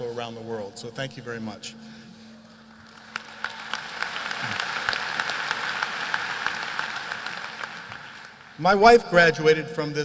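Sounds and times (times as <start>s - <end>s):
audience applauding: 2.7s - 8.6s.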